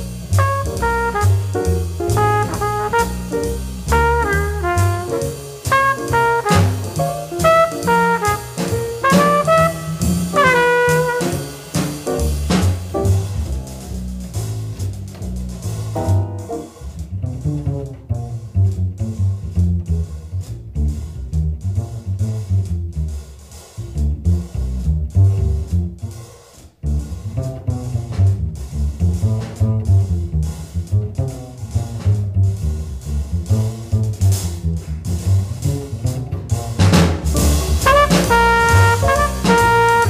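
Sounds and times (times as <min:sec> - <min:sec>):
drum kit cymbals and drums: 0:00.0 - 0:17.5, 0:20.2 - 0:40.0
plucked upright bass solo: 0:00.0 - 0:40.0
trumpet: 0:00.2 - 0:11.8, 0:37.7 - 0:40.0
tenor saxophone: 0:00.4 - 0:11.4, 0:37.8 - 0:40.0.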